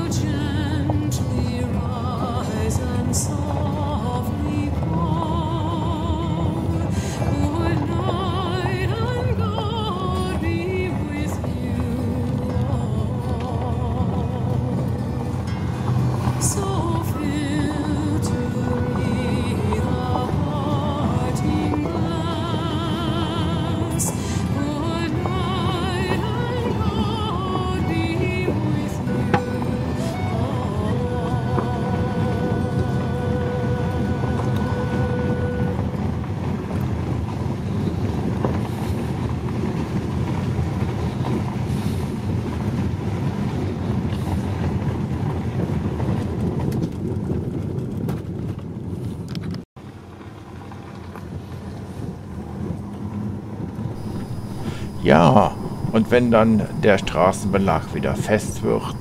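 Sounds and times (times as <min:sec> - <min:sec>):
music with vibrato voice: 0:00.0 - 0:35.9
car rumbling on unpaved road: 0:00.0 - 0:59.0.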